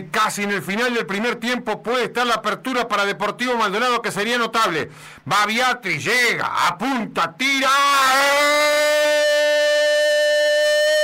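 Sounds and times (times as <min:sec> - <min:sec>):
commentator shouting goal cry: 0:05.6 - 0:11.0.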